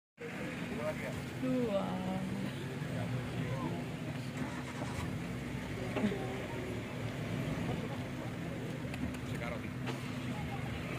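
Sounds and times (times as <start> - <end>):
people talking: 0.2 - 4.7, 5.5 - 10.9
jeep engine running: 0.2 - 10.9.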